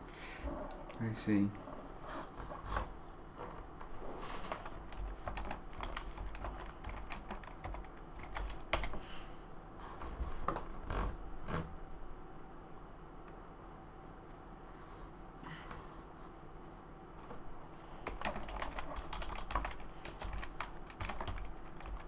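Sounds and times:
computer keyboard typing: 0:04.4 - 0:09.0, 0:18.0 - 0:22.0.

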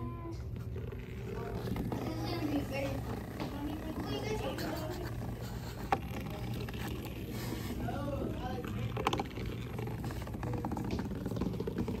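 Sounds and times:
legs rattling on cardboard: 0:00.5 - 0:12.0
vibrating robot bug buzzing: 0:00.5 - 0:12.0.

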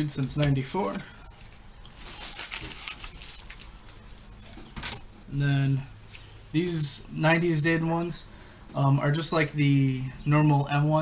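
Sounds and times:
plastic packaging crinkling: 0:00.9 - 0:04.6.

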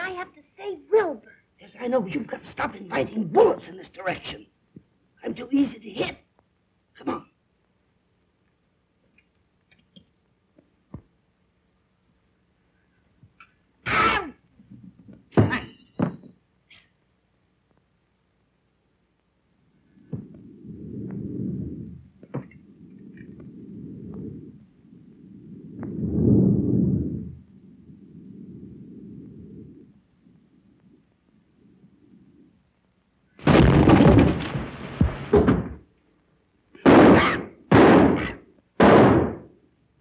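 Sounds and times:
low rumbling and shuffling: 0:17.3 - 0:36.6
loud crash: 0:33.4 - 0:35.8
short loud bangs: 0:33.4 - 0:35.8, 0:36.8 - 0:39.4.

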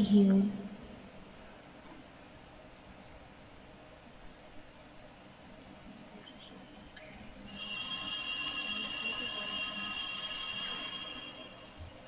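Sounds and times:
high-pitched bell-like ringing: 0:07.4 - 0:12.0.

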